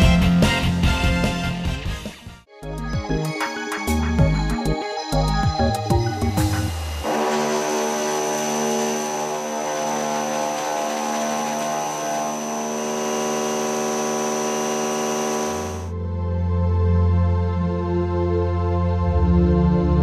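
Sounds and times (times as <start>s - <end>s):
background music with bass drone: 0.0s - 7.3s, 13.4s - 20.0s
milling machine hum and whine: 6.4s - 15.9s.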